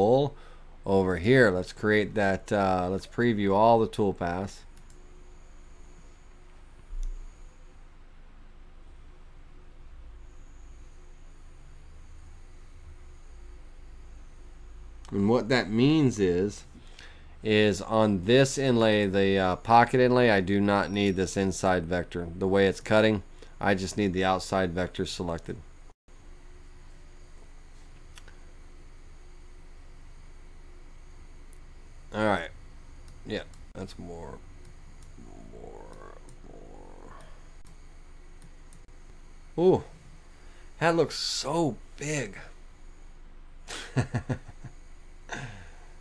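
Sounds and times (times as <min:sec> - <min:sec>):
faint high-pitched whines: 0:00.0 - 0:46.0
steady low hum: 0:00.0 - 0:46.0.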